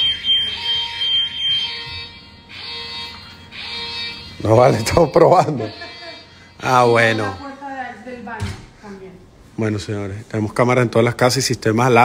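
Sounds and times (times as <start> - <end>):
alarm siren pulsing: 0.0 - 7.7.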